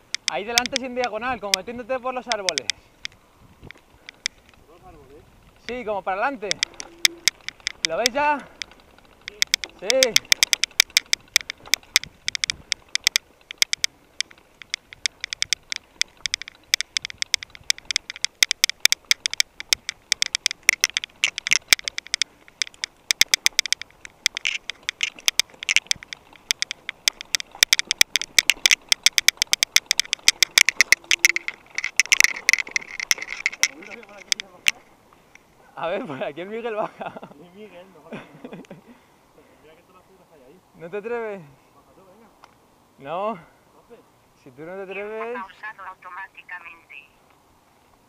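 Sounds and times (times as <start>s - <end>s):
bike rattling clicks and knocks: 0.0s - 35.5s.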